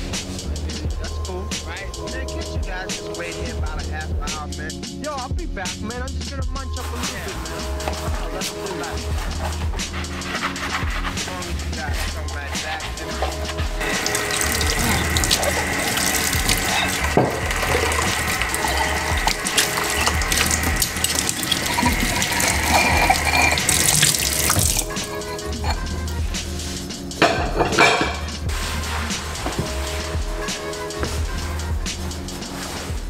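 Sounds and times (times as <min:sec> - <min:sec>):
music with bass beat: 0:00.0 - 0:33.0
faucet running onto dishes: 0:13.0 - 0:26.0, 0:27.2 - 0:28.3.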